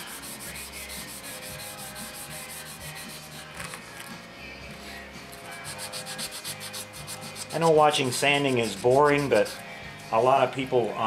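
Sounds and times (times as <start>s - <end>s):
wet sandpaper rubbing plastic: 0.0s - 3.8s, 5.4s - 9.6s.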